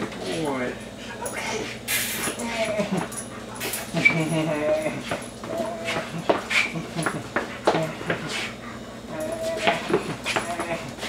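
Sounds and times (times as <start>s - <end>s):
dog whining and whimpering: 2.3s - 8.4s, 9.0s - 11.0s.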